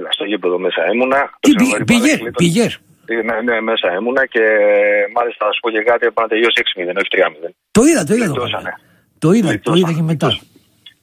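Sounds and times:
man talking over telephone: 0.0s - 10.5s.

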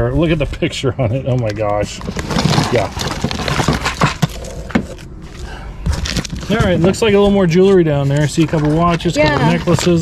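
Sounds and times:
rummaging through a cardboard box: 1.8s - 7.2s, 8.1s - 10.0s.

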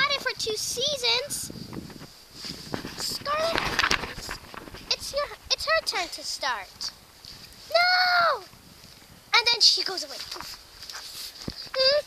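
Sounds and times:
rustling: 1.5s - 12.0s
child vocalizing: 11.7s - 12.0s.

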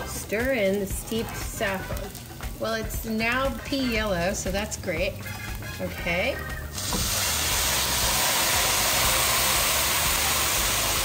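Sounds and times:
liquid sizzling in a hot pan: 0.0s - 5.8s, 6.6s - 11.0s.

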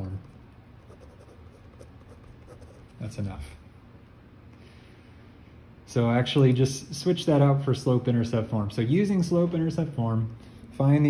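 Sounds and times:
ballpoint pen writing on paper: 0.8s - 2.9s.

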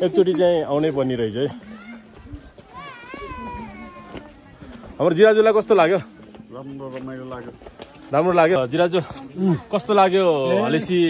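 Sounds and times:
man's voice: 8.2s - 11.0s.

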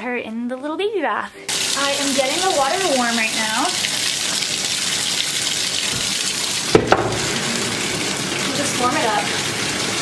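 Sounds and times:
faucet running into bathtub: 1.5s - 10.0s
sharp knocks: 6.7s - 7.3s.

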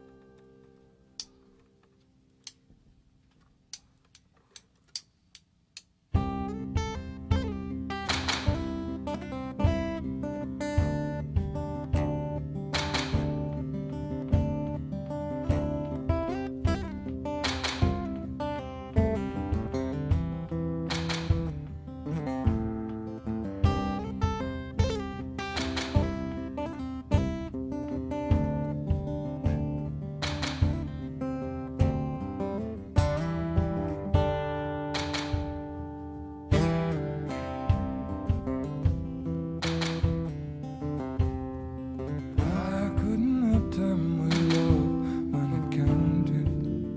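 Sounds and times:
acoustic guitar picked and strummed: 0.0s - 5.0s, 6.0s - 46.9s
drum and percussion hits: 6.2s - 10.0s, 10.7s - 13.6s, 14.3s - 14.8s, 15.4s - 18.4s, 19.0s - 27.5s, 28.3s - 31.2s, 31.8s - 35.8s, 36.5s - 46.9s.

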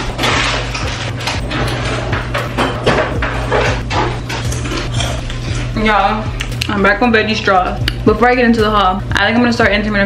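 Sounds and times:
household knocks and clatters: 0.0s - 5.0s
steady low hum: 0.0s - 10.0s.

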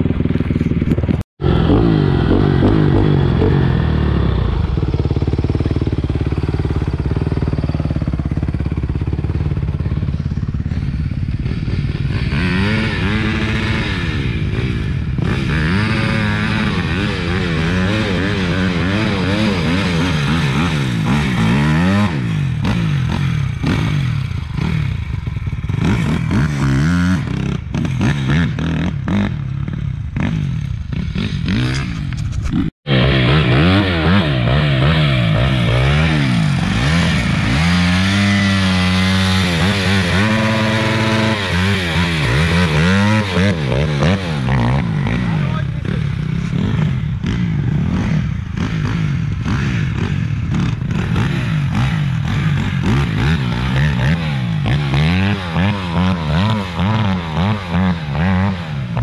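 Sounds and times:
dirt bike engines revving: 0.0s - 59.0s.

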